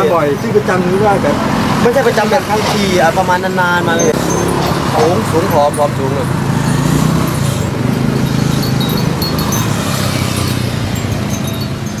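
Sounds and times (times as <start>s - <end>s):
roadside traffic hum: 0.0s - 12.0s
high-pitched tinkling notes: 3.8s - 12.0s.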